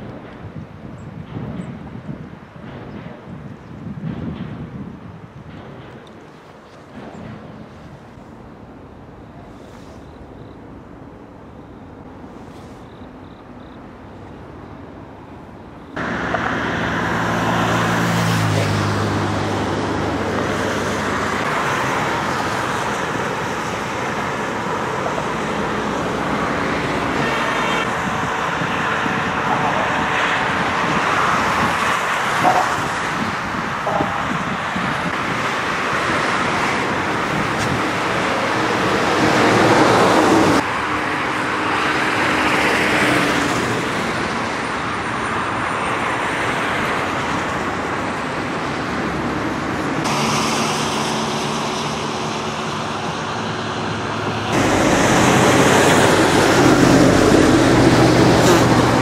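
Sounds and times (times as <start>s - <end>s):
light wind: 0.0s - 59.0s
road traffic: 0.0s - 59.0s
cars passing: 5.4s - 59.0s
vehicle engine hum: 8.0s - 59.0s.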